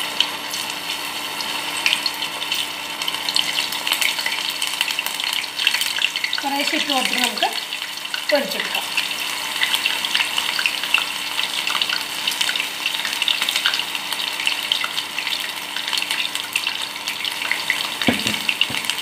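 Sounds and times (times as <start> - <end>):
batter deep-frying in hot oil: 0.0 - 19.0.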